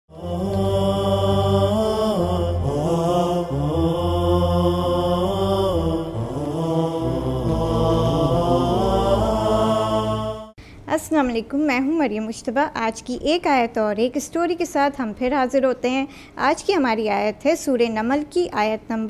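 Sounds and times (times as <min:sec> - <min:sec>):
solo voice chanting: 0:00.1 - 0:10.6
steady low drone: 0:00.1 - 0:10.6.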